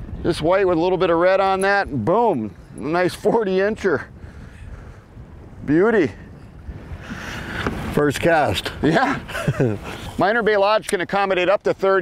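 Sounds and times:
wind on microphone: 0.0s - 12.0s
water slapping against boat: 6.7s - 11.2s.

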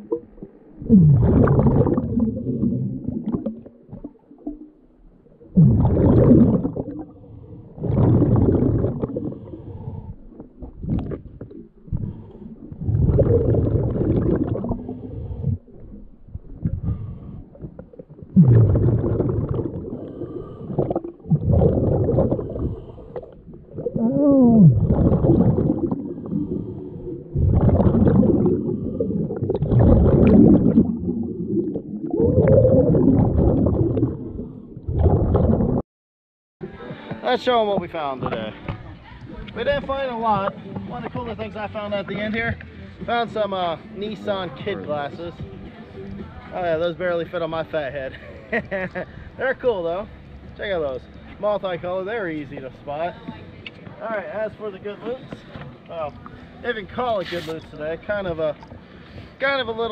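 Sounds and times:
exhaled bubbles rumbling: 0.0s - 35.8s
diver breathing through regulator: 5.8s - 16.0s, 16.6s - 30.9s.

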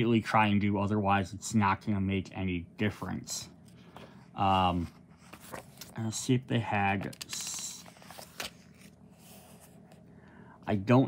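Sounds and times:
paper pages turning: 4.7s - 10.0s.

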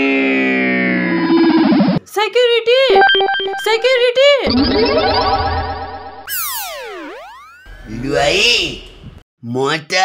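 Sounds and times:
wobbling synth tone: 0.8s - 2.0s, 2.9s - 8.3s
swooping boing glide: 6.3s - 7.8s.

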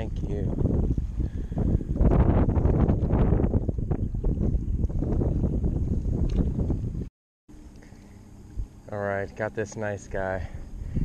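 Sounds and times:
wind buffeting microphone: 0.0s - 7.1s, 10.4s - 11.0s.

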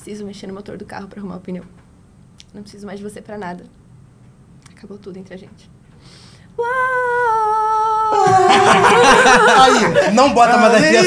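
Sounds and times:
person singing long falling note: 6.6s - 9.8s
people laughing: 8.1s - 11.0s.

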